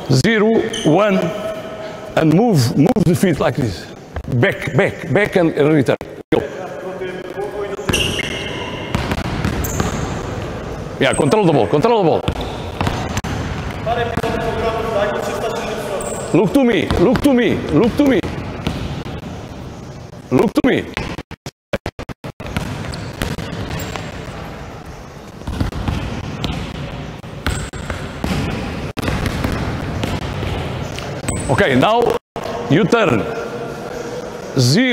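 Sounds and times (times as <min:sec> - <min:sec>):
basketballs dribbled on gym floor: 0:07.8 - 0:10.6, 0:12.2 - 0:14.7, 0:16.8 - 0:19.2, 0:22.4 - 0:31.6.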